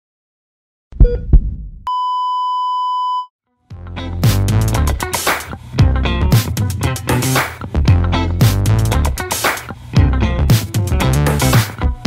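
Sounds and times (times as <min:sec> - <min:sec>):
electronic beep tone: 0:01.9 - 0:03.3
music with a beat: 0:03.7 - 0:12.0.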